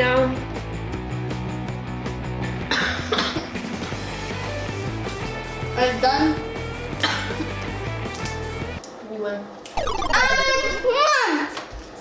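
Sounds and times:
person coughing: 2.7s - 3.5s, 7.0s - 7.5s.

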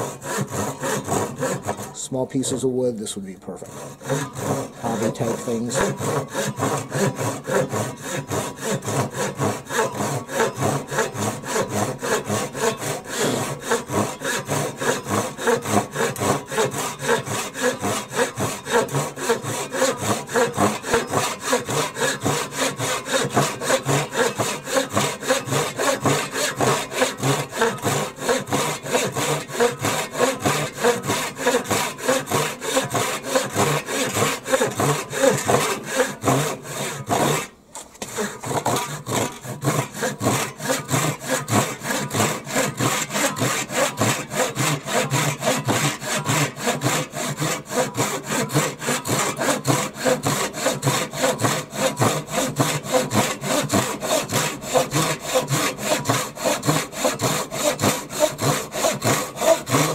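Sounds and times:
hand saw cutting wood: 0.0s - 59.9s.

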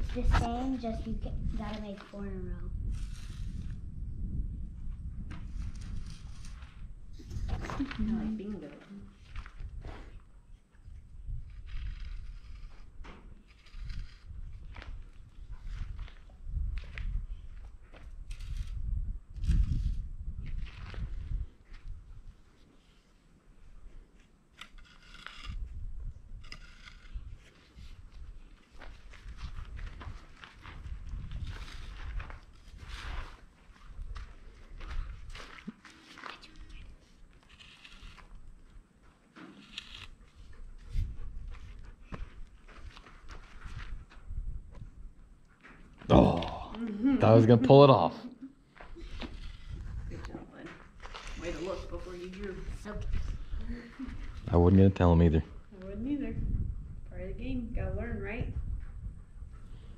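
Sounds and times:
stick scratching dirt: 0.0s - 4.0s, 5.2s - 8.4s, 9.1s - 17.2s, 17.9s - 21.9s, 24.0s - 44.0s, 49.0s - 52.8s
footsteps shuffling on dirt: 27.3s - 44.9s, 48.6s - 54.5s.

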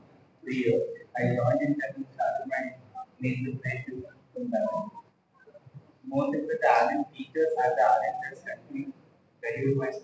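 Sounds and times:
young man speaking into a microphone: 0.4s - 10.0s.

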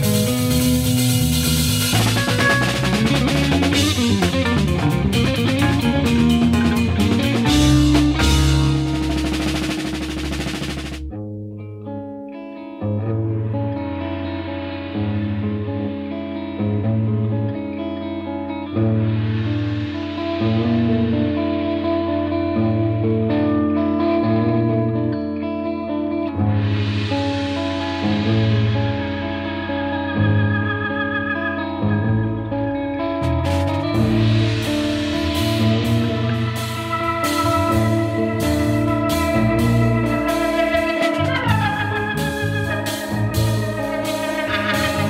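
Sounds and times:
jazz fusion band: 0.0s - 11.1s, 26.5s - 45.0s
pulsing bass line: 0.0s - 11.8s, 18.7s - 23.0s, 26.3s - 45.0s
held chords: 0.0s - 12.2s, 26.1s - 45.0s.

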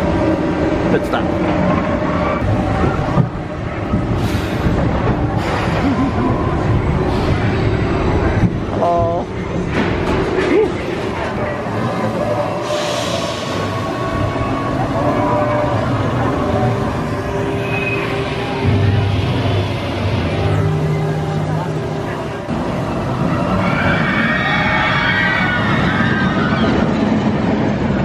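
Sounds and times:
roller coaster wheels rumbling on track: 0.0s - 28.0s.

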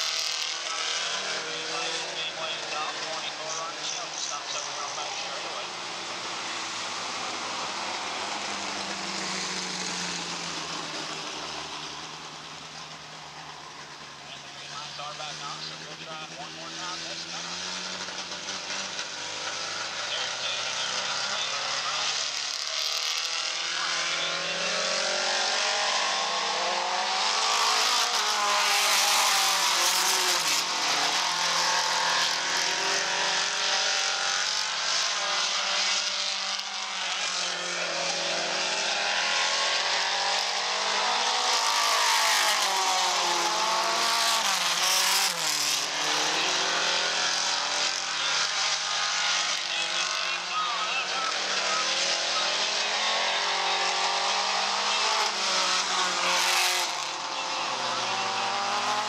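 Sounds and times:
race car engines running hard: 0.0s - 59.0s.

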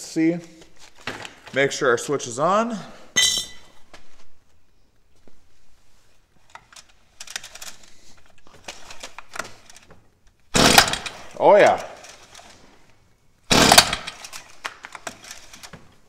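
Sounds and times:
engine cranking without starting: 10.6s - 11.3s, 13.5s - 14.4s
string trimmer recoil starter pulls: 10.6s - 11.3s, 13.5s - 15.7s.

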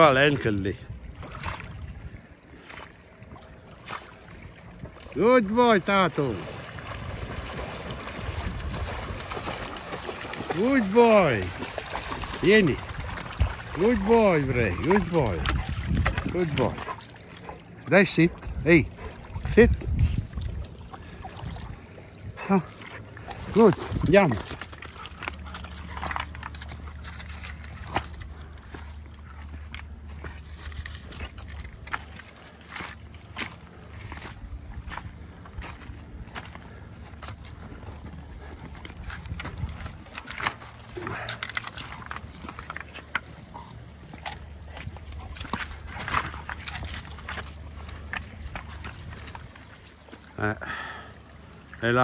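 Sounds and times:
steady low hum: 0.7s - 52.0s
footsteps on pebbles: 23.6s - 50.3s.

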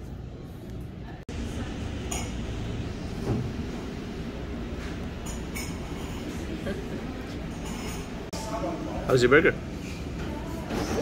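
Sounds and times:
restaurant background rumble: 0.0s - 11.0s.

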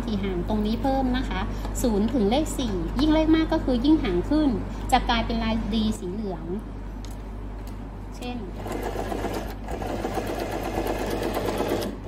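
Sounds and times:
sewing machine running: 8.6s - 12.0s.

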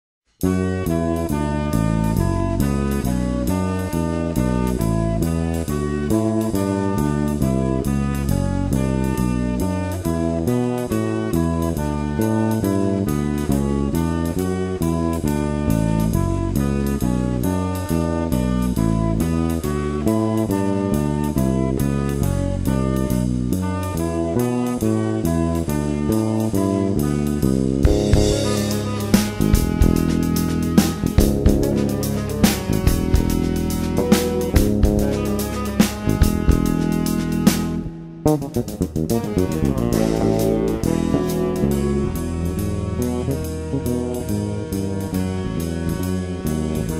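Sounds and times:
bass line: 0.4s - 46.9s
tenor saxophone melody: 0.4s - 46.9s
drum kit playing: 17.7s - 46.9s.

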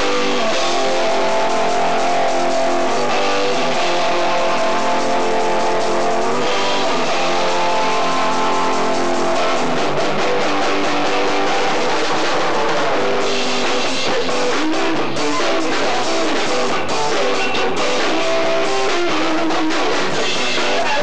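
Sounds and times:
electric guitar chords: 0.0s - 21.0s
punk rock band playing live: 0.0s - 21.0s.

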